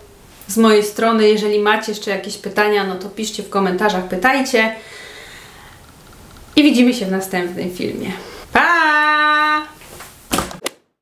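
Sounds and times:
woman calling out goodbye: 8.5s - 9.8s.

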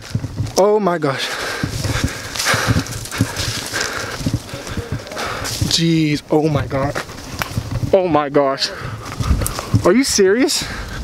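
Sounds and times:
man panting: 1.2s - 5.7s, 10.6s - 11.0s.

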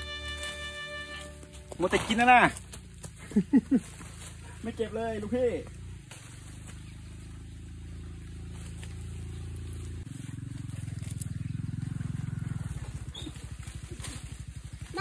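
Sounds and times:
small engine running: 0.0s - 15.0s.

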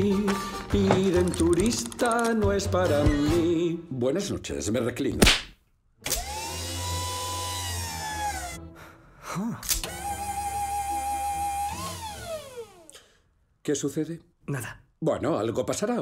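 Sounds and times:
reclining chair motor whirring: 6.1s - 8.6s, 9.8s - 13.0s.

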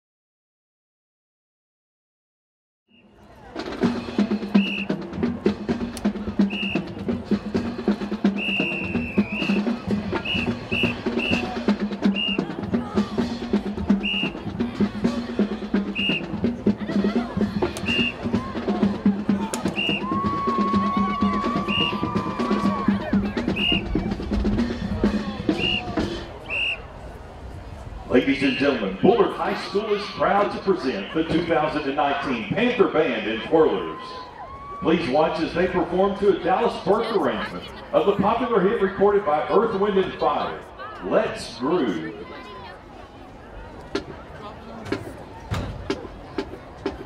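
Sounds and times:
snare and bass drums beating: 3.6s - 26.3s.

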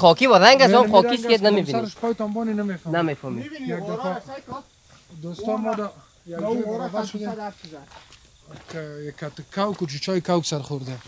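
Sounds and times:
man speaking: 0.0s - 11.0s
breathy hiss: 0.1s - 11.0s.

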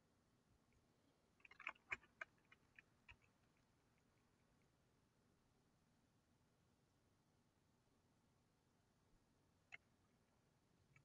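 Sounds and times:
faint keyboard keystrokes: 1.4s - 3.3s.

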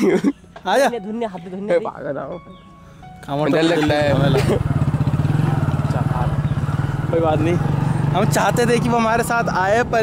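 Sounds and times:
voices: 3.2s - 10.0s
motorcycle engine running: 3.9s - 10.0s.

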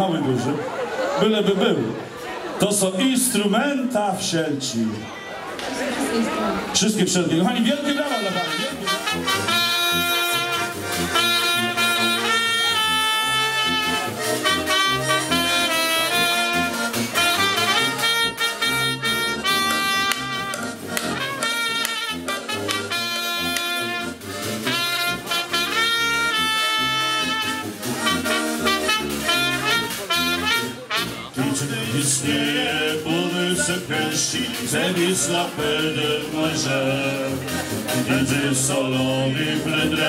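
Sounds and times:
accordion: 4.8s - 40.0s
tuba bass: 6.6s - 40.0s
trumpet melody: 7.4s - 40.0s.

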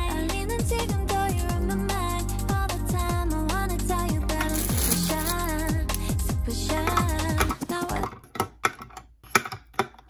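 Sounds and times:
plastic pens clattering in cup: 4.4s - 5.5s.

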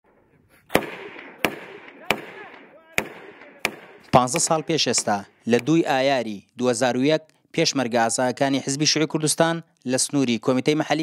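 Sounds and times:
rifle shots with echo: 0.1s - 6.0s.

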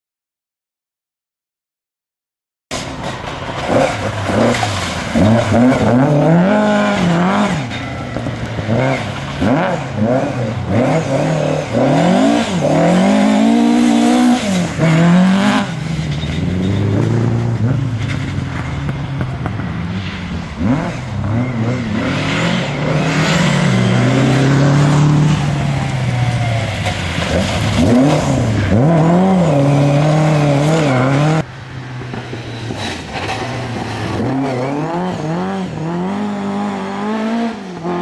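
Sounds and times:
tyres on loose gravel: 2.8s - 12.7s, 25.4s - 31.2s, 32.0s - 35.4s
rally car engine revving: 2.8s - 38.0s.

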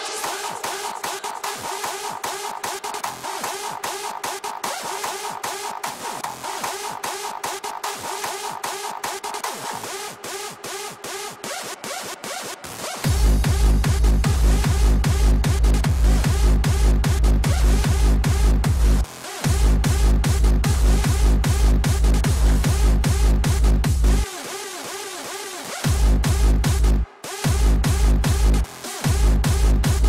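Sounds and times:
electronic dance music: 0.0s - 30.0s.

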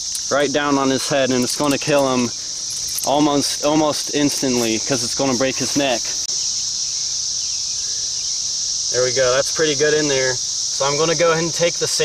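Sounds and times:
insects shrilling: 0.0s - 12.0s.

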